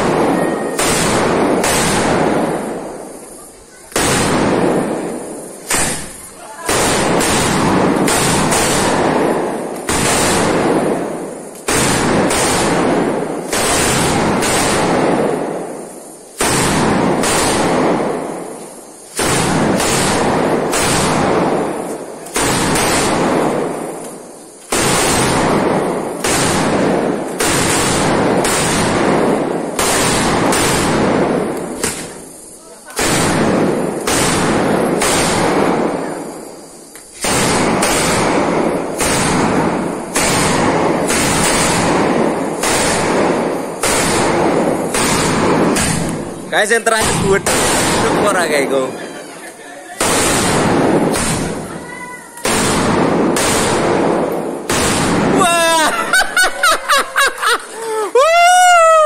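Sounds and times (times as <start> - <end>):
firecrackers cracking rapidly: 0.0 - 59.0.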